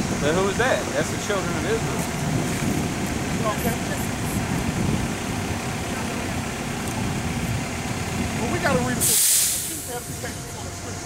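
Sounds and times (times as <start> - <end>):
city street traffic rumble: 0.0 - 11.0
vehicle engine idling: 0.0 - 11.0.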